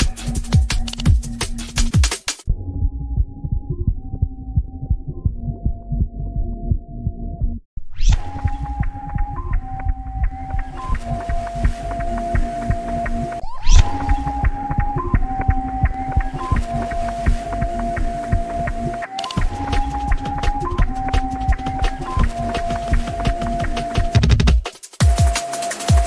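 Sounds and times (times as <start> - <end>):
electronic music with beat: 0.0 - 7.5, 8.1 - 26.0
rising synth sweep: 8.1 - 24.2.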